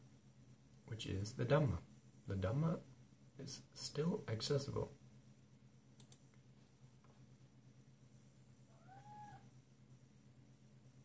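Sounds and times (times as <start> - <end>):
cat meowing faintly: 8.7 - 9.6.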